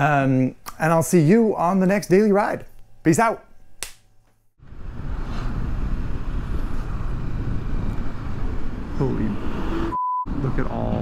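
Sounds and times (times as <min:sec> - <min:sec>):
road noise: 0:04.6 - 0:11.0
truck traffic: 0:04.6 - 0:11.0.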